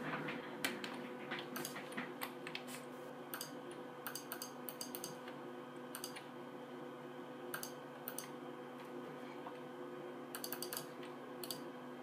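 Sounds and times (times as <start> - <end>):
faint steady hum: 0.0 - 12.0
mouse and keyboard clicks: 10.4 - 11.6.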